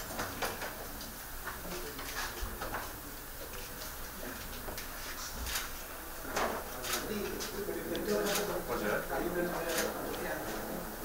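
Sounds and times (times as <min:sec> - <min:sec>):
low office background: 0:00.0 - 0:11.0.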